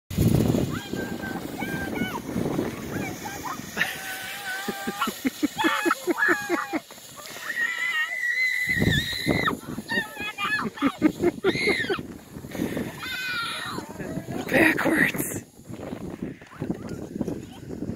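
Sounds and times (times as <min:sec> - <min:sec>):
children shouting and squealing: 0:00.6 - 0:14.4, 0:16.1 - 0:17.8.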